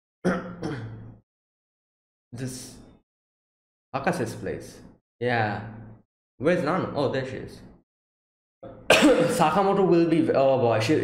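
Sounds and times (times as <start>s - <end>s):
man clearing his throat: 0.3s - 1.1s, 8.6s - 9.5s.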